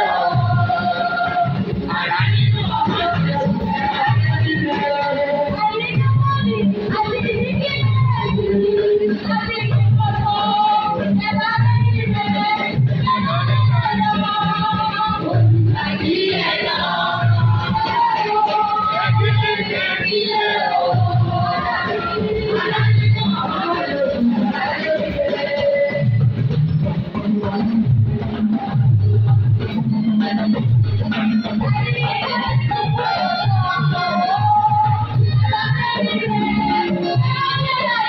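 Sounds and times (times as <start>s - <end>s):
women's choir singing: 0.0s - 5.9s, 6.6s - 26.0s, 31.7s - 38.0s.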